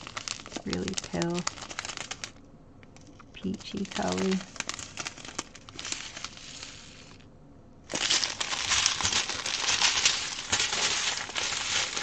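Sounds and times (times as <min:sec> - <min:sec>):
plastic bags crinkling: 0:00.0 - 0:07.2, 0:07.9 - 0:12.0.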